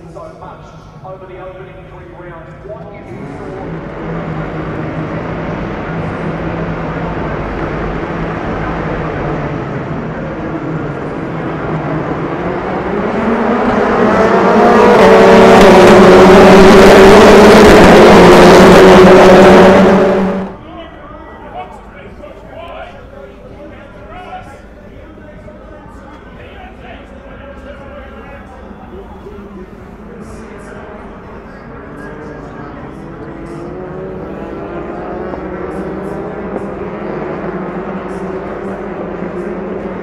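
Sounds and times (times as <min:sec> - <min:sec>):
racing car engines accelerating: 0:00.0 - 0:40.0.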